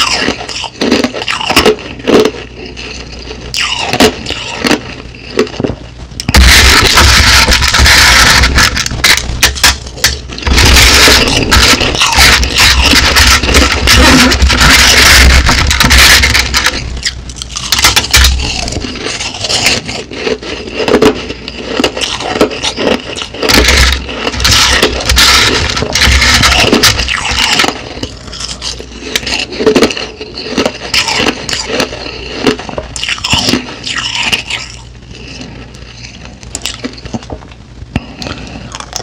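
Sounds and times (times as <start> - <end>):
crushed ice scraped on a plate: 17.5 - 36.8.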